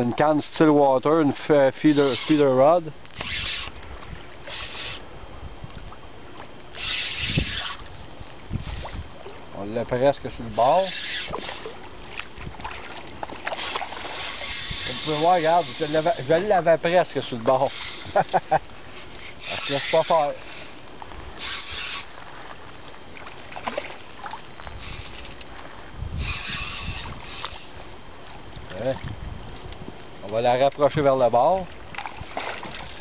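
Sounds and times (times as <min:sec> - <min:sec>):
water splashing and sloshing: 0:00.0 - 0:33.0.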